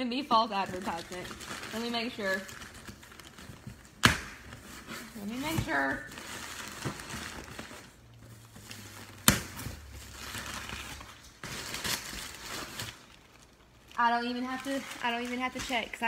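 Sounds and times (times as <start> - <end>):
packaging rustling and crinkling: 0.3 - 16.0.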